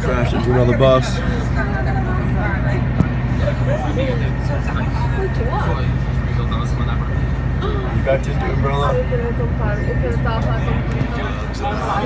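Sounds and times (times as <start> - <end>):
bus diesel engine idling: 0.0 - 12.0
people talking: 0.0 - 12.0.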